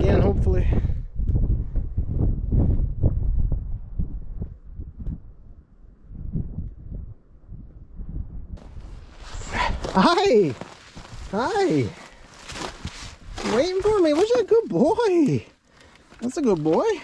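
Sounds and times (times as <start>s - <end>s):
wind buffeting microphone: 0.0s - 14.6s.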